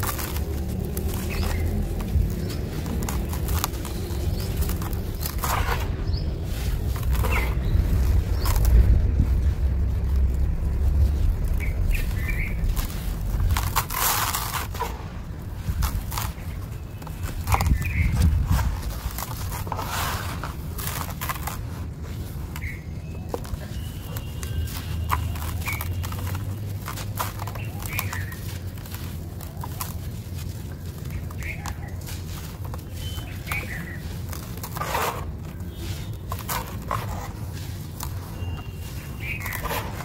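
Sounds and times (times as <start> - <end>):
low rumble: 0.0 - 16.4
grit crunching by hand: 0.0 - 40.0.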